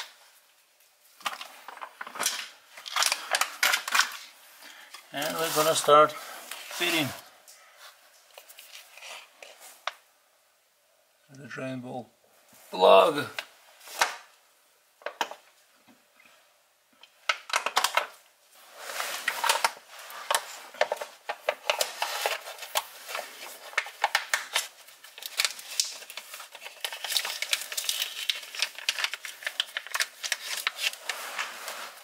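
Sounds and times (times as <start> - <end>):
plastic pouch crinkling: 19.2 - 32.0.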